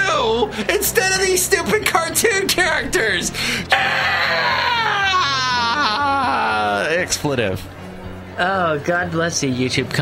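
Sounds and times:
person wailing laughter: 3.7s - 6.9s.

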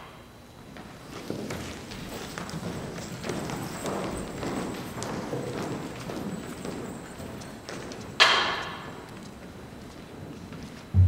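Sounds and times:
footsteps on stage floor: 0.5s - 11.0s.

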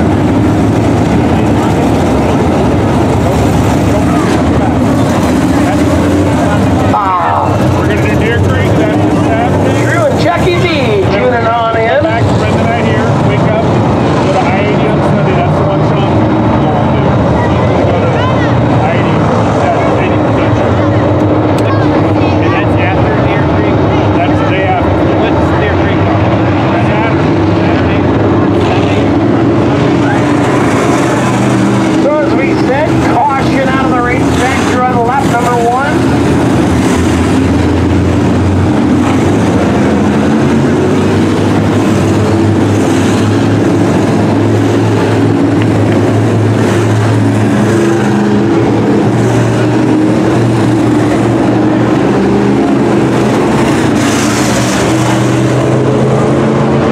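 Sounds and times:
race car engines passing: 0.0s - 56.9s.

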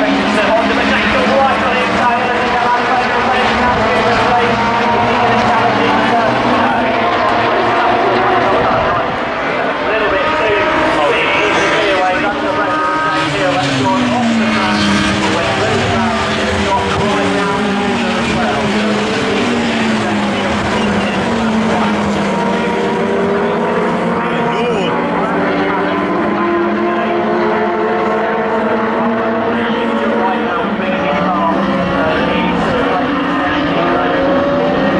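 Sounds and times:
race car engines revving: 0.0s - 34.9s.

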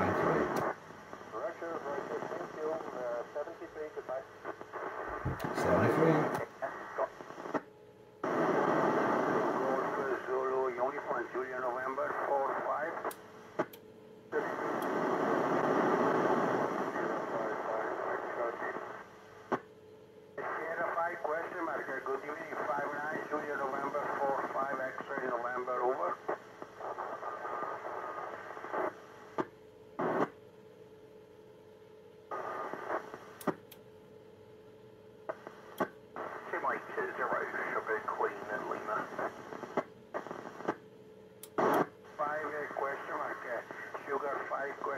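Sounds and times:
garbled radio voices: 0.0s - 0.7s, 5.0s - 7.1s, 36.2s - 39.3s
radio hiss: 0.0s - 7.6s, 8.2s - 13.7s, 14.3s - 19.6s, 20.4s - 30.4s, 32.3s - 33.6s, 35.3s - 40.8s, 41.5s - 44.9s.

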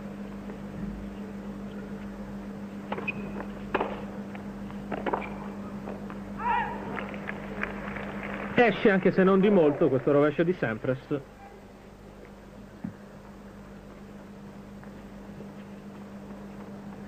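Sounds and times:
low broadcast hum: 0.0s - 17.0s
short high-pitched shout: 6.4s - 7.0s.

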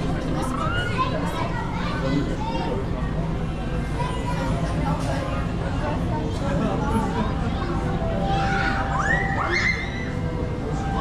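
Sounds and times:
children's voices: 0.0s - 10.2s
visitors chattering: 0.0s - 11.0s.

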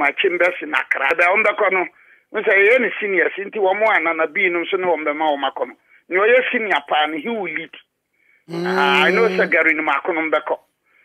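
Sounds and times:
man speaking: 8.5s - 9.8s.

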